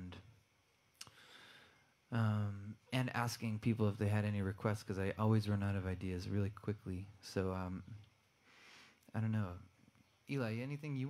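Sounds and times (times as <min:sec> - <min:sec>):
soft mouth click: 0:01.0 - 0:01.2
faint breath: 0:01.0 - 0:02.0, 0:08.4 - 0:09.0.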